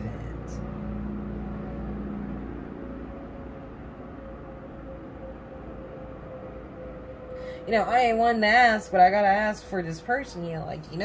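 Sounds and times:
mechanical hum and rumble: 0.0s - 11.0s.

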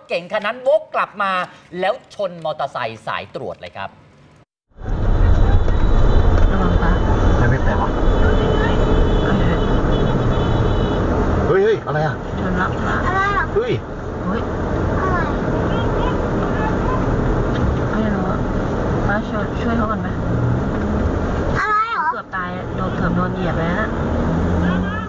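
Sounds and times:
car engine hum in cabin: 4.8s - 25.0s.

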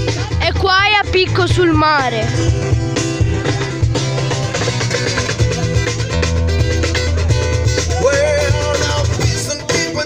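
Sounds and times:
deep bass line: 0.0s - 10.0s
electric guitar melody: 0.0s - 10.0s.

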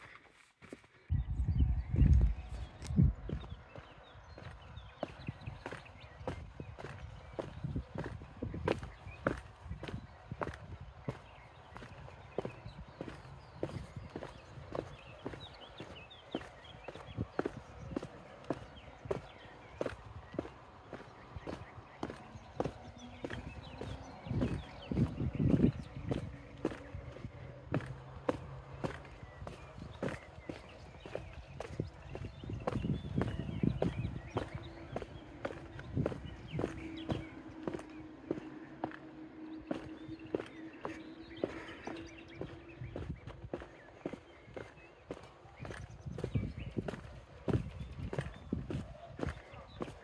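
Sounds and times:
wind buffeting microphone: 1.1s - 50.0s
footsteps on stone: 2.0s - 50.0s.

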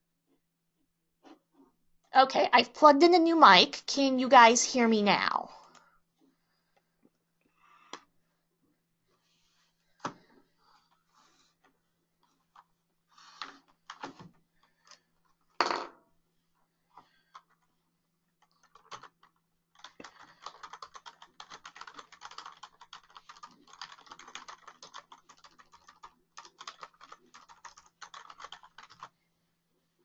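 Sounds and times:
computer keyboard typing: 18.4s - 29.1s.

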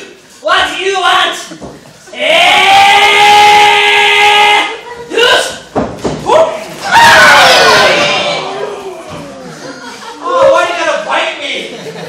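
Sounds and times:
man yelling: 2.1s - 5.6s, 10.2s - 11.5s.

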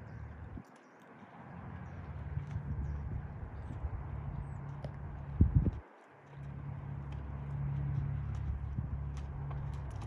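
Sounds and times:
horse hoofbeats on dirt: 0.0s - 10.0s.

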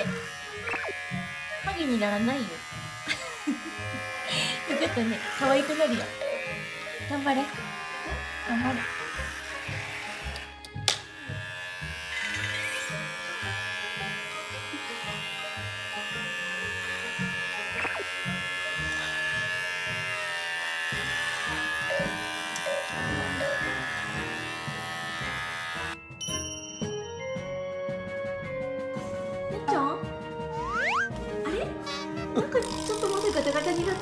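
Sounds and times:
electric pet clipper running: 0.0s - 26.0s, 31.8s - 34.0s
background music: 0.0s - 34.0s.

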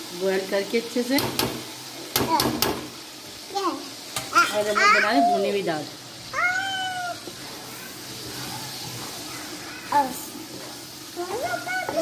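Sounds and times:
cat meowing: 6.4s - 7.2s.

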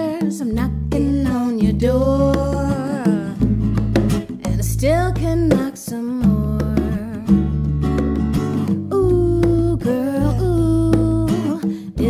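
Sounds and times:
woman singing long notes: 0.0s - 3.4s, 4.5s - 7.3s, 8.9s - 12.0s
sustained bass guitar notes: 0.5s - 2.8s, 6.3s - 11.4s.

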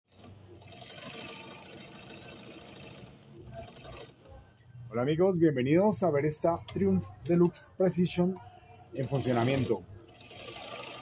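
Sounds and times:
sewing machine running: 0.1s - 4.3s, 9.0s - 11.0s.

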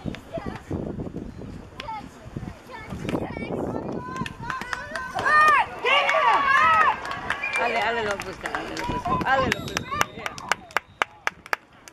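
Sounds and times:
people yelling and cheering: 3.5s - 10.8s.

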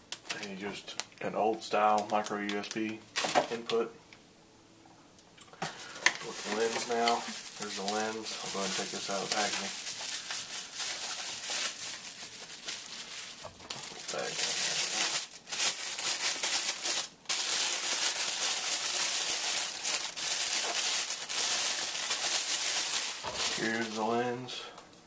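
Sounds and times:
plastic packaging crinkling: 0.1s - 3.8s, 5.8s - 24.4s.

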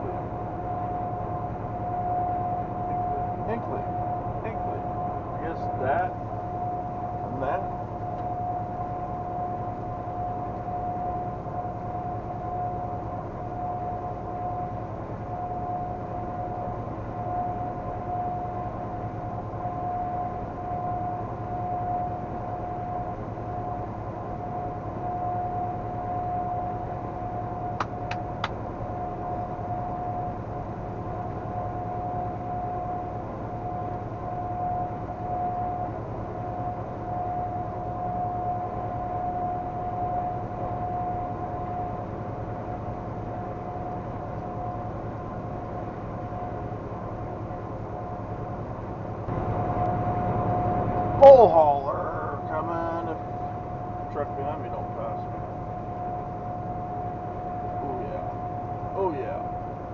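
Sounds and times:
constant high hum: 0.0s - 59.9s.

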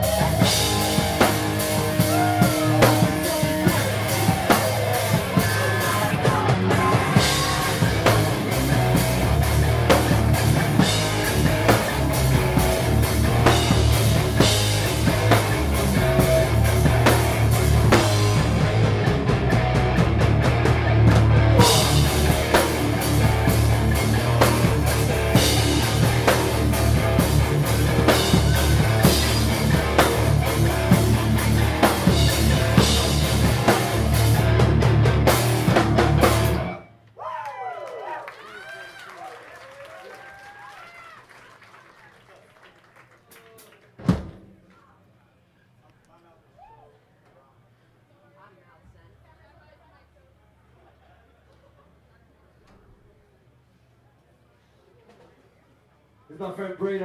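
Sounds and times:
drum kit pounding: 0.0s - 36.8s, 44.0s - 44.6s
bass guitar: 0.0s - 36.9s
distorted electric guitars: 0.0s - 36.9s.

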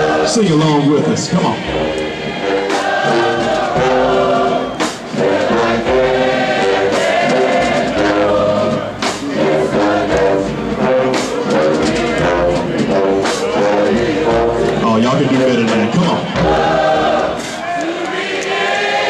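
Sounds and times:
choir singing slow melody: 0.0s - 0.4s, 1.6s - 14.8s, 16.3s - 19.0s.

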